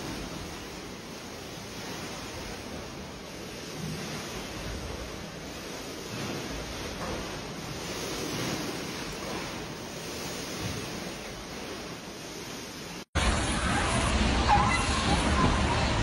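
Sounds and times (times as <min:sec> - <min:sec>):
pool water sloshing and spilling: 0:00.0 - 0:16.0.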